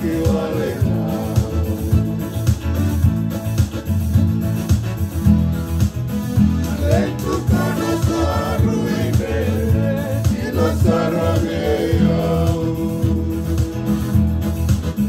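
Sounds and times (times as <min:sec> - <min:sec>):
men singing: 0:00.0 - 0:02.6, 0:06.6 - 0:14.3
beat and bass: 0:00.0 - 0:15.0
electronic keyboard: 0:00.0 - 0:15.0
strummed acoustic guitar: 0:00.0 - 0:15.0.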